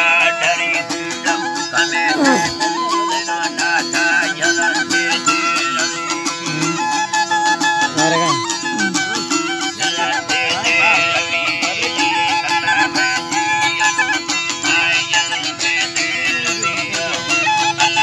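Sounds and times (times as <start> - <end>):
wavering string melody: 0.0 - 18.0.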